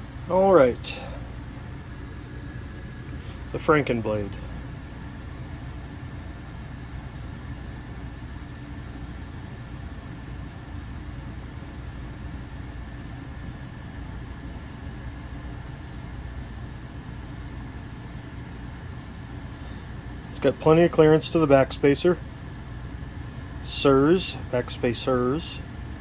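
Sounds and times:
room noise hum and hiss: 0:00.0 - 0:26.0.

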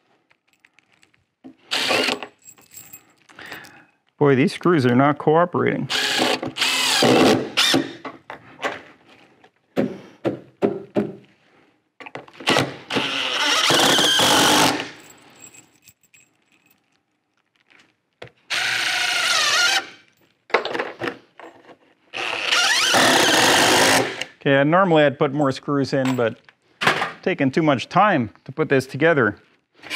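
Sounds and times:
cordless drill driving screws: 0:01.7 - 0:02.3, 0:05.9 - 0:08.0, 0:12.4 - 0:14.9, 0:18.5 - 0:20.0, 0:22.1 - 0:24.3.

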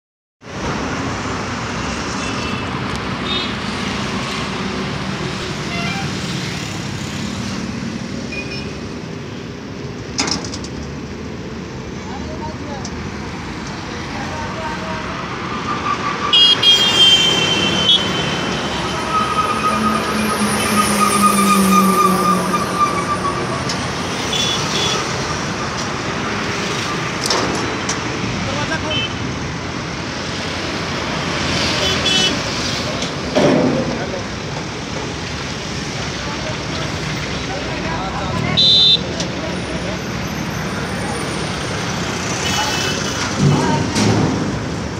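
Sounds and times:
street traffic: 0:00.4 - 0:44.9
vehicle horn tooting: 0:16.3 - 0:19.1, 0:38.6 - 0:39.1.

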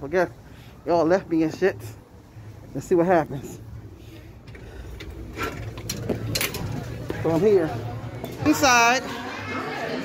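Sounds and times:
murmur of voices: 0:00.2 - 0:10.0.

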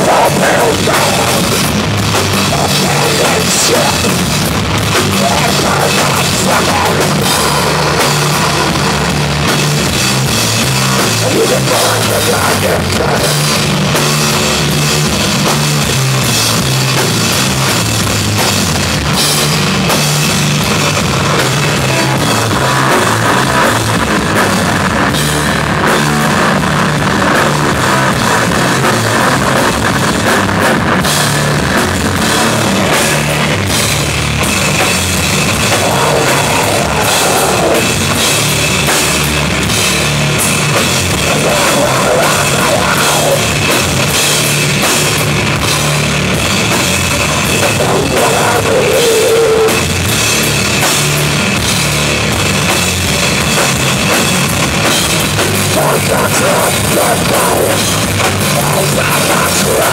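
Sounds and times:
distorted guitar and bass riff: 0:00.0 - 0:59.9
drums and cymbals: 0:00.0 - 0:59.9
metal band playing: 0:00.0 - 0:59.9
person shouting vocals: 0:02.5 - 0:04.2, 0:05.2 - 0:07.7, 0:11.2 - 0:13.3, 0:35.7 - 0:38.0, 0:41.3 - 0:43.5, 0:47.7 - 0:49.8, 0:55.8 - 0:57.8, 0:58.5 - 0:59.9.

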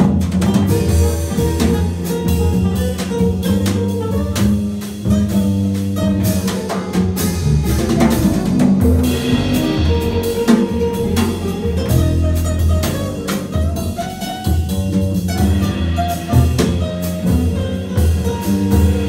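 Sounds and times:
drum kit: 0:00.0 - 0:19.0
guitar: 0:00.0 - 0:19.0
upright double bass: 0:00.0 - 0:19.0.

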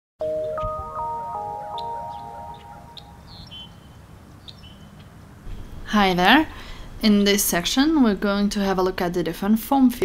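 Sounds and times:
mallet percussion jingle: 0:00.2 - 0:03.3
birds chirping: 0:00.4 - 0:05.4.

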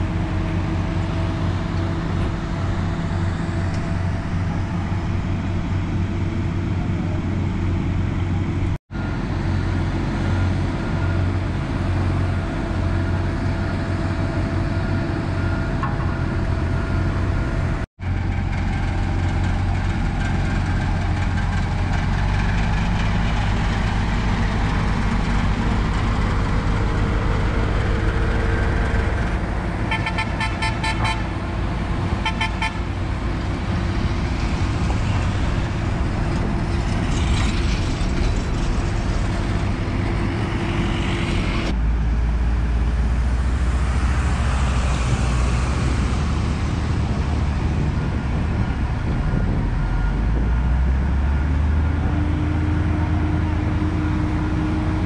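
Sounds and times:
diesel machinery engines droning: 0:00.0 - 0:55.0.

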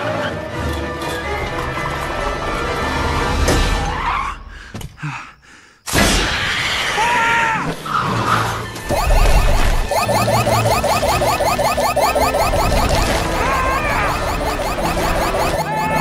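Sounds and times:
film soundtrack music: 0:08.0 - 0:16.0
car sound effects: 0:08.9 - 0:16.0.

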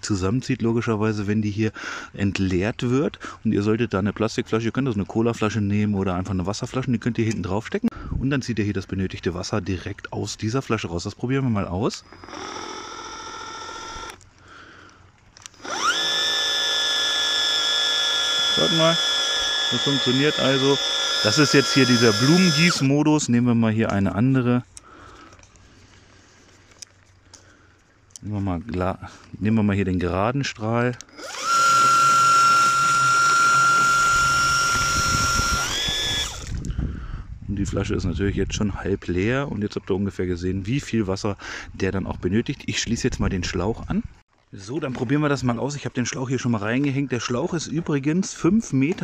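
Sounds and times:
sprayer pump motor whining: 0:11.9 - 0:14.4, 0:15.4 - 0:23.0, 0:31.0 - 0:36.8.

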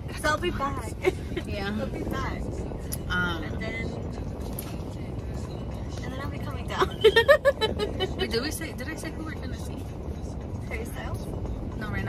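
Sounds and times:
car engine rumble in cabin: 0:00.0 - 0:12.0.

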